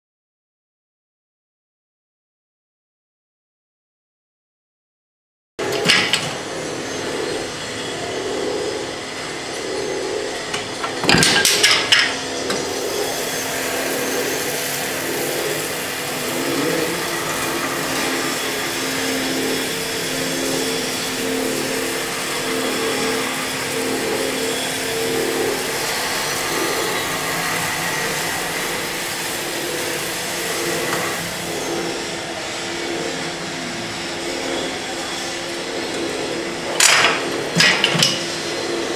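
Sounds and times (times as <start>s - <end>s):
winding machine humming: 5.6s - 38.9s.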